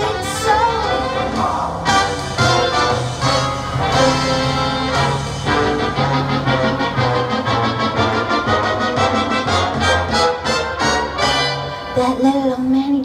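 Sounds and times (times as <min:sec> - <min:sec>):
instrumental band music: 0:00.0 - 0:12.7.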